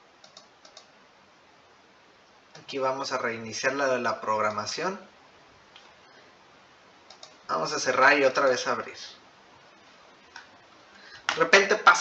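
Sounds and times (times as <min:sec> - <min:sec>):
computer mouse click: 0:00.2 - 0:00.9, 0:07.0 - 0:07.4.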